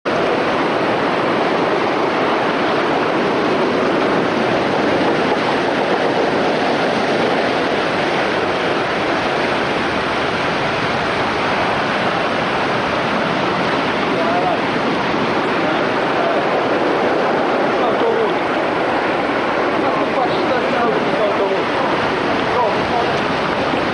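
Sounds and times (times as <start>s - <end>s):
heavy surf breaking against seawall: 0.0s - 23.9s.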